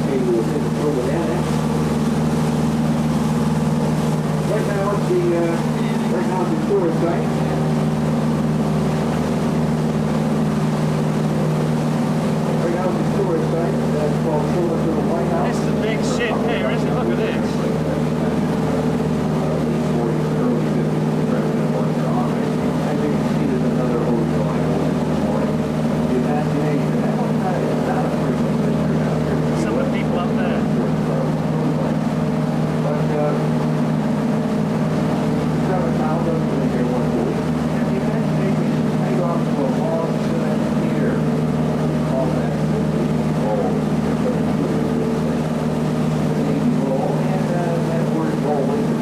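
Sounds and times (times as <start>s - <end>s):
boat engine humming: 0.0s - 49.0s.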